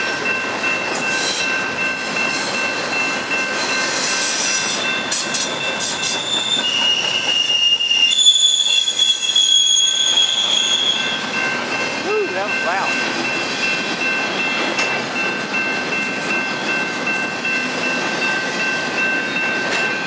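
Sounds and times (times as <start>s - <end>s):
freight cars rumbling on rails: 0.0s - 20.0s
whistling wheel squeal: 3.6s - 11.4s.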